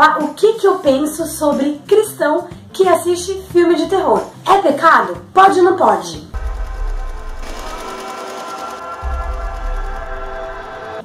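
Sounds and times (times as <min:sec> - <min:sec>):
deep low rumble: 0:06.4 - 0:07.9
eerie sustained chord: 0:06.4 - 0:11.0.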